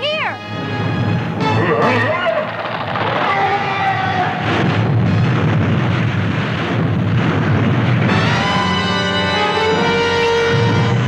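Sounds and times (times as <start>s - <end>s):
cartoon rumbling crash: 1.4s - 11.0s.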